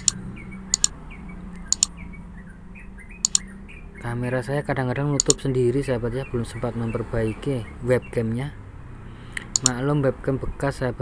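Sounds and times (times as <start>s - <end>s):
computer mouse clicking: 1.7s - 1.9s, 3.2s - 3.4s, 5.2s - 5.4s, 9.4s - 9.8s.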